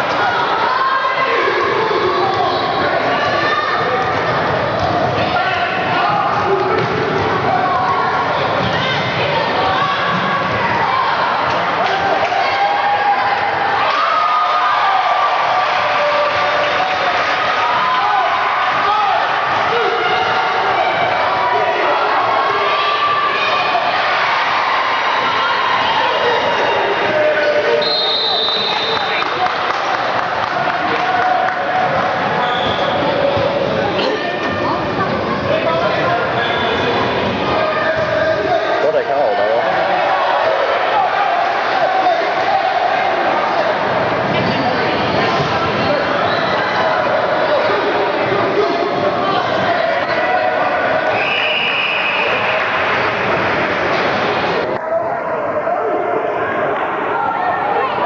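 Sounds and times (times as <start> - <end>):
spectators murmuring in hall: 0.0 - 58.0.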